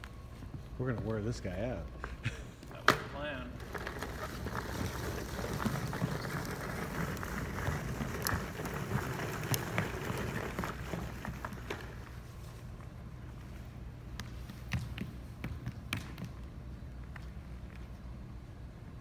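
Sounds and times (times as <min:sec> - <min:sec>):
plastic wheels rolling on wood floor: 0:03.5 - 0:12.6.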